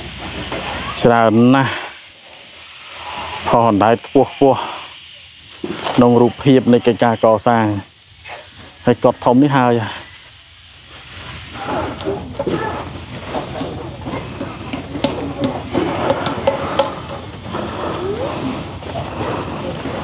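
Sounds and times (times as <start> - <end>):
steady high whine: 0.0 - 20.0
distant people talking: 11.5 - 20.0.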